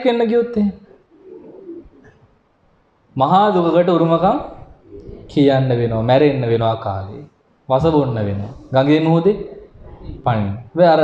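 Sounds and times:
dove cooing: 0.7s - 2.2s, 3.8s - 6.8s, 7.8s - 10.8s.

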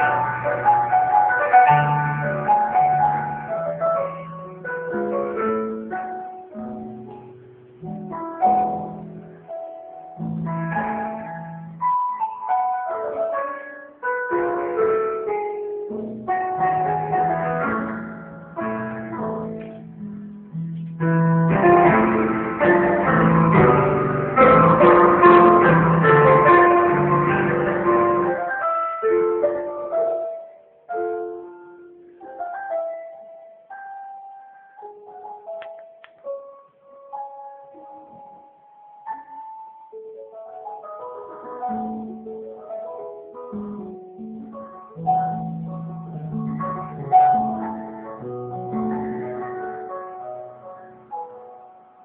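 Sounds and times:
simple melody: 0.0s - 52.0s.

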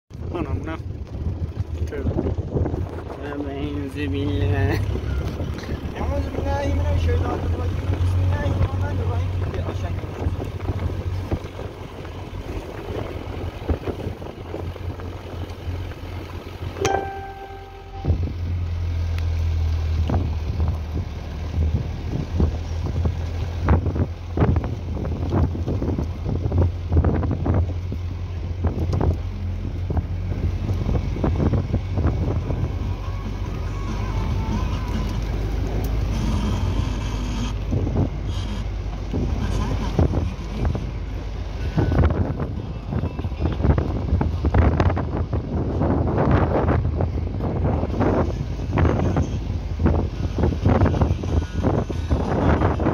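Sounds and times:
wind buffeting microphone: 0.1s - 16.8s, 19.9s - 36.4s, 37.5s - 52.9s
brief held tone: 16.8s - 18.4s.

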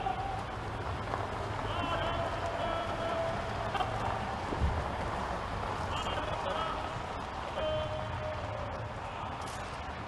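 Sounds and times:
cars passing slowly: 0.0s - 10.0s
faint voices: 0.0s - 10.0s.

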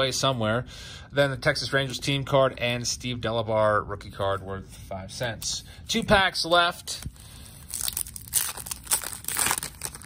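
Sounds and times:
foil wrapper tearing and crinkling: 7.6s - 10.0s.

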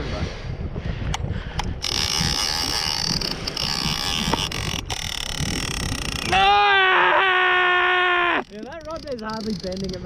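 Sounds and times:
wind buffeting microphone: 0.0s - 10.0s
fishing reel gears whirring: 1.5s - 10.0s.

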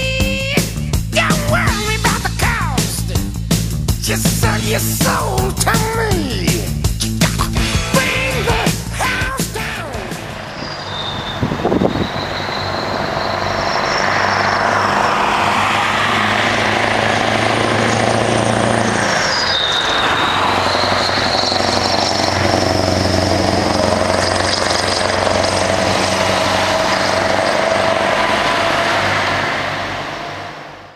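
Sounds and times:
high engine whine: 0.0s - 30.9s
truck engine pulling loudly: 0.0s - 30.9s.

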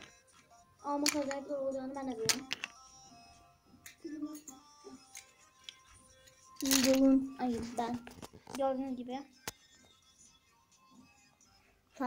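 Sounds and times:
faint background music: 0.0s - 12.0s
pencils clicking together: 1.0s - 1.4s, 2.2s - 2.8s, 6.6s - 7.1s
person speaking: 6.6s - 9.3s.

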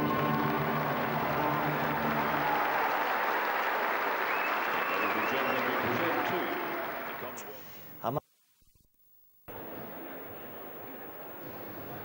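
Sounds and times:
crowd applauding: 0.0s - 7.6s.

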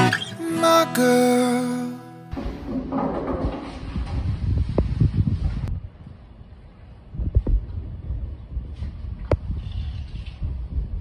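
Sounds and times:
song: 0.0s - 2.4s.

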